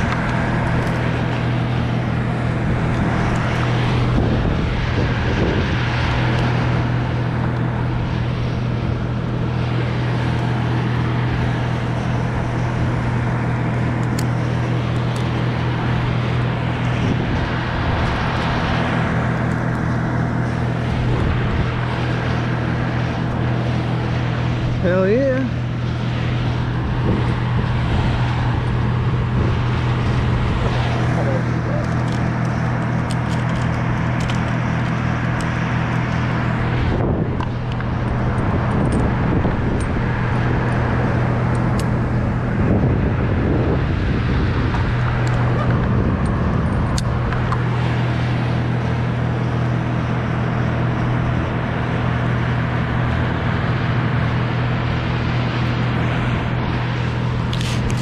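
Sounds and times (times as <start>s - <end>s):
engine running steadily: 0.0s - 58.0s.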